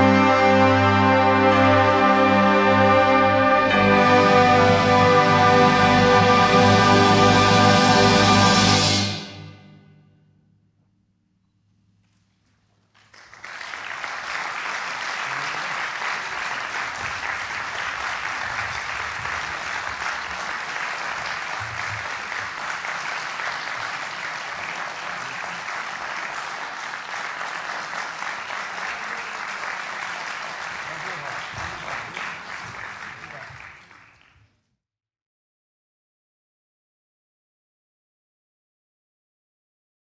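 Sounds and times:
audience applauding: 12.9 - 34.5.

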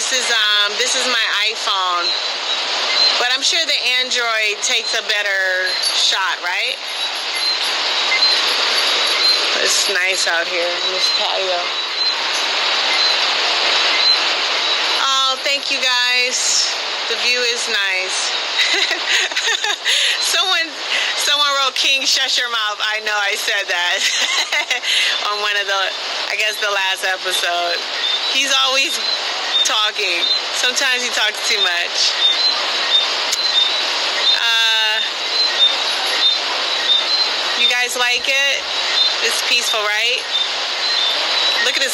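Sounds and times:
ocean waves rushing: 0.0 - 41.9.

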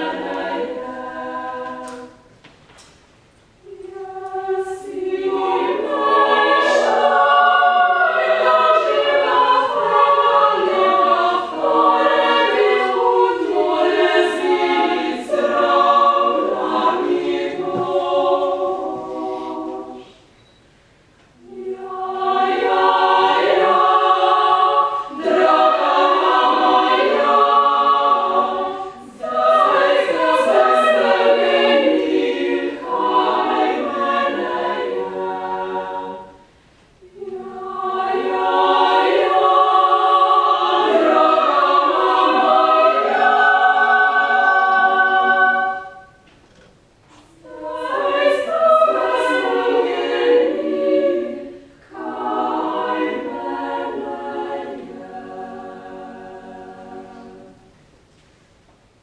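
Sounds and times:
women's choir singing a cappella: 0.0 - 2.5, 3.6 - 20.6, 21.2 - 46.2, 47.1 - 57.9.

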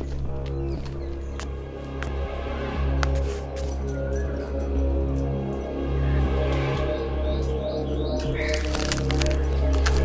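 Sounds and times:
background music: 0.0 - 10.0
keys clicking in a gate lock: 8.5 - 10.0.

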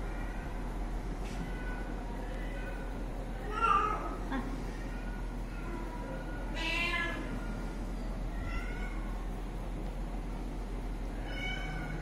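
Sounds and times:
cat meowing: 4.8 - 7.4, 8.3 - 9.1, 11.2 - 12.0.

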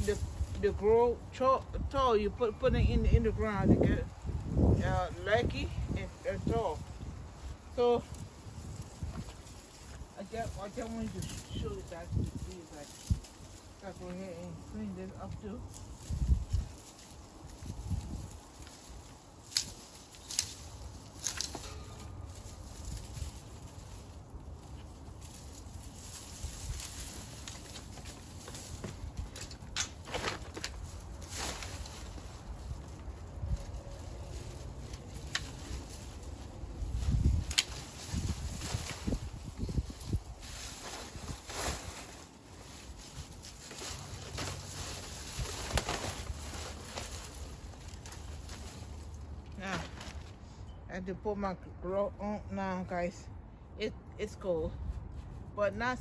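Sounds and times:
dry plant stems rustling: 0.0 - 56.0.

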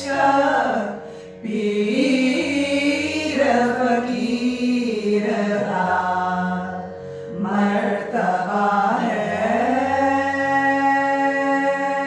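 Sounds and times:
women singing a devotional chant: 0.0 - 12.0.

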